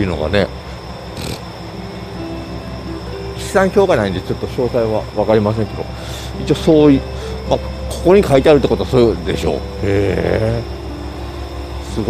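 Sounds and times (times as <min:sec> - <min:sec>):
soft background music: 0:00.0 - 0:12.0
steady low hum: 0:00.0 - 0:12.0.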